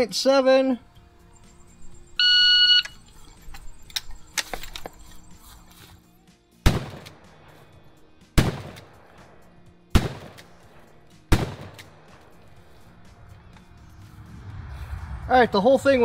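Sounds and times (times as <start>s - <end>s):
shotgun shots with echo: 6.6s - 7.6s, 8.4s - 12.4s.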